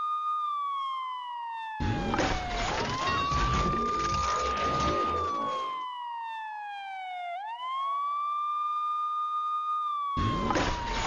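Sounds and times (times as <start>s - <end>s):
ambulance siren wailing: 0.0s - 11.0s.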